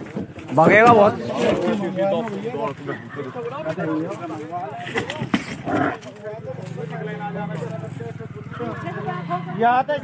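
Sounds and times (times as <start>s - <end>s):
animal grunt: 5.5s - 6.1s.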